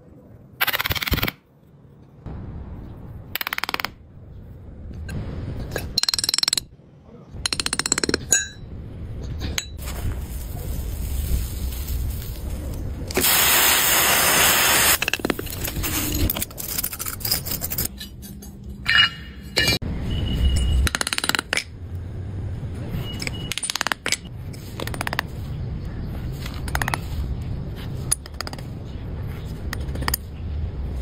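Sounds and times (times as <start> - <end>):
gritty scraping of sand: 9.8 - 15.0.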